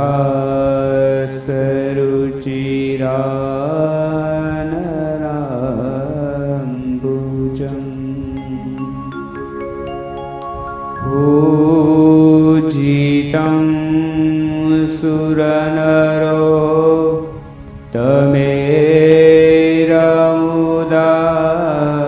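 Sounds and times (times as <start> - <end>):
man chanting into microphone: 0.0 - 8.6, 11.3 - 22.0.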